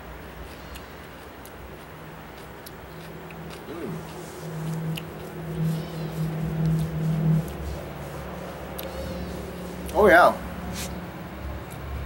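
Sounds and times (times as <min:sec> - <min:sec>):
faint chewing clicks: 0:00.4 - 0:05.6
man humming mmm: 0:03.6 - 0:07.5.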